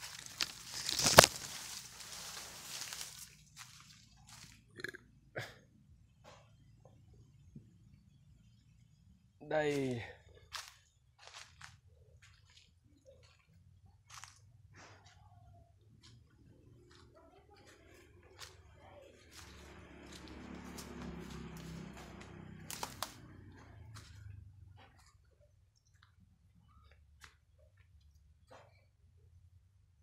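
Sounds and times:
footsteps on dry leaves and twigs: 0.0s - 4.7s, 9.7s - 13.4s, 14.0s - 14.5s, 16.9s - 24.3s
rustling past plants: 0.0s - 4.7s, 16.0s - 25.3s.

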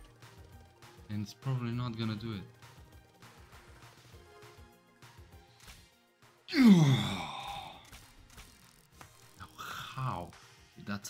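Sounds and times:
man sighing: 6.5s - 7.9s.

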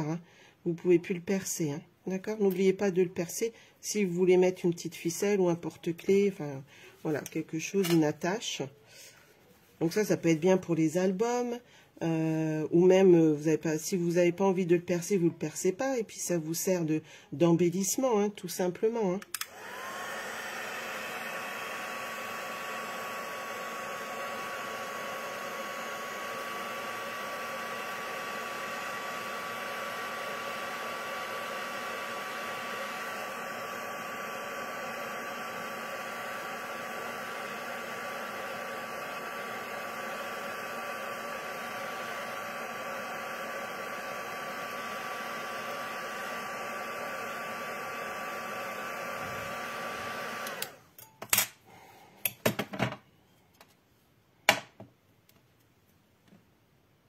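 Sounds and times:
heat gun blowing with whine: 19.3s - 50.9s.

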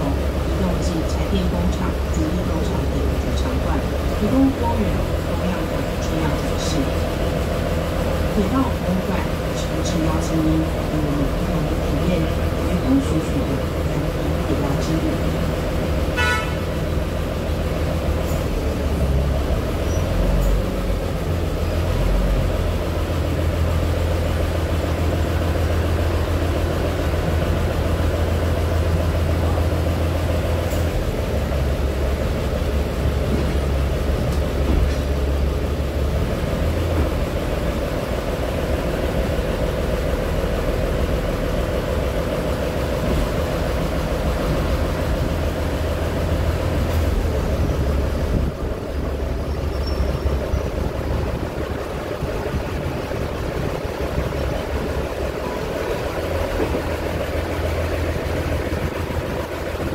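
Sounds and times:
diesel railcar engine drone: 0.0s - 59.9s.

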